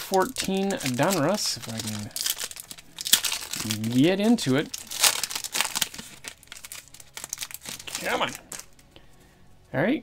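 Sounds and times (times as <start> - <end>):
wrapper tearing: 0.0 - 8.9
plastic wrapper crinkling: 0.0 - 9.0.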